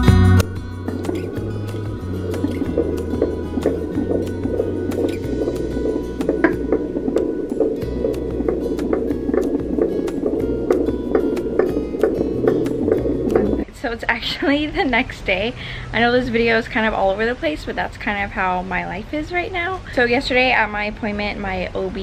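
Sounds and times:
background music with low notes: 0:00.0 - 0:13.7.

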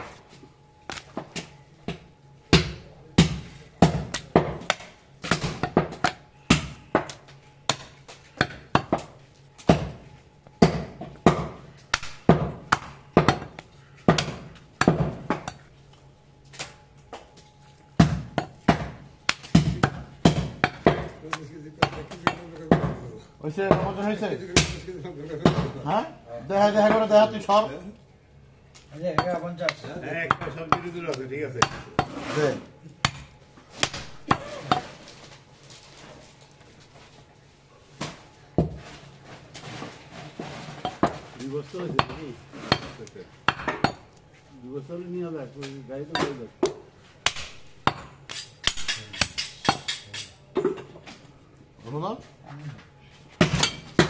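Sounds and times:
cleaver chopping meat on wood: 0:02.5 - 0:10.0, 0:10.6 - 0:15.7, 0:18.0 - 0:23.0, 0:29.2 - 0:32.1, 0:33.0 - 0:34.9, 0:46.2 - 0:50.0.

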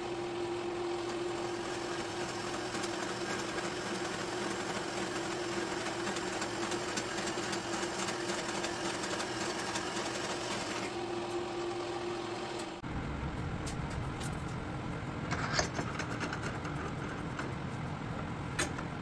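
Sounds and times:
bandsaw humming: 0:00.0 - 0:12.8.

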